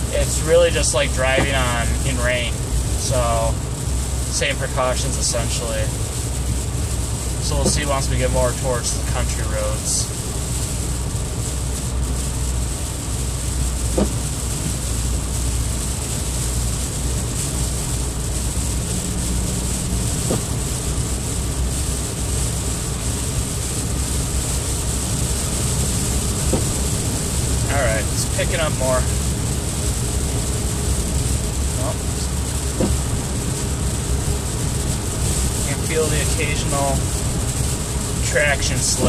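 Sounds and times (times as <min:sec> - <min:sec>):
low engine and road hum: 0:00.0 - 0:39.0
tyre hiss on wet road: 0:00.0 - 0:39.0.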